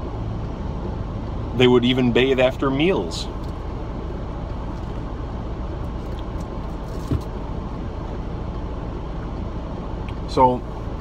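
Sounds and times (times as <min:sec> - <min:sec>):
car idling hum: 0:00.0 - 0:11.0.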